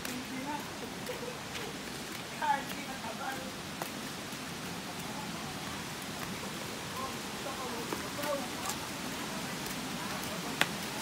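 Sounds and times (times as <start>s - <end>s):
distant waterfall rushing: 0.0s - 11.0s.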